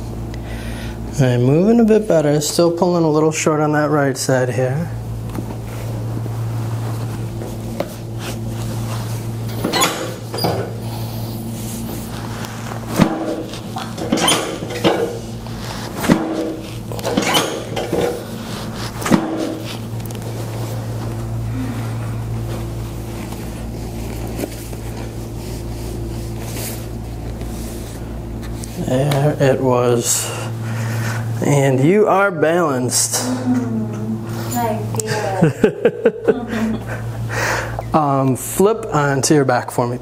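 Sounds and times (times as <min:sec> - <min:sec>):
steady low hum: 0:00.0 - 0:40.0
chiropractic table clunks: 0:12.9 - 0:15.2, 0:15.9 - 0:18.2, 0:19.0 - 0:19.7.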